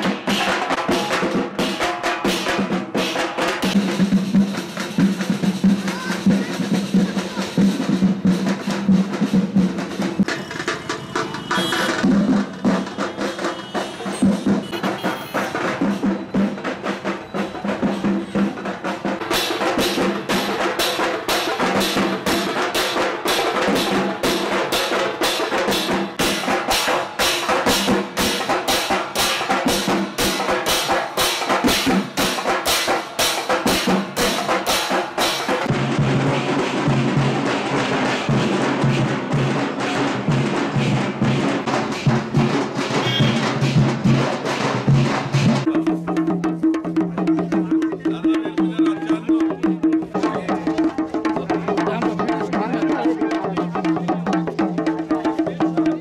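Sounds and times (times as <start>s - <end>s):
street drums beating: 0.0s - 56.0s.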